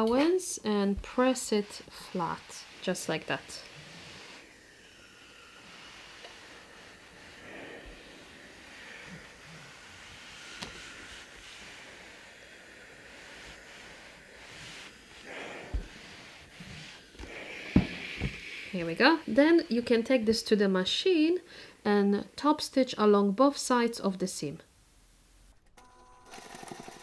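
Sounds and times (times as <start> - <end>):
iron swishing over fabric: 0.0 - 4.5, 5.4 - 19.6.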